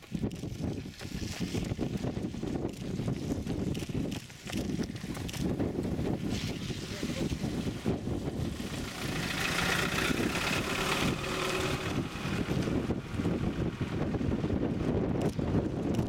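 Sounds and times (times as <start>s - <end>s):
wind buffeting microphone: 0.0s - 16.0s
car driving past: 8.4s - 13.0s.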